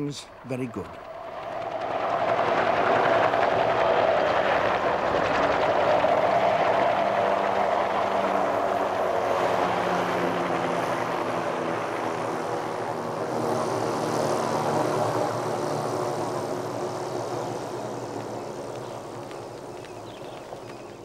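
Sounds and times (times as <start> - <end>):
helicopter flying low: 0.0 - 21.0.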